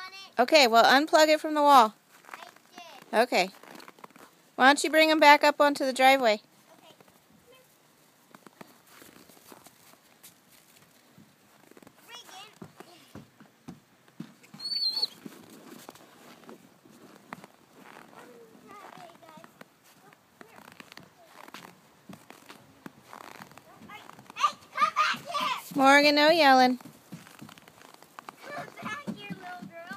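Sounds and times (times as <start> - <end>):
scuffing and crunching in snow: 2.1 - 4.4, 6.7 - 13.0, 15.2 - 29.6
puppies squeaking: 14.5 - 15.3.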